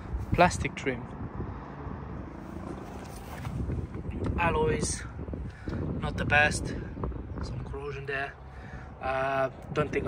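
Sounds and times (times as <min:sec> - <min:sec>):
low outdoor background rumble: 0:00.0 - 0:10.0.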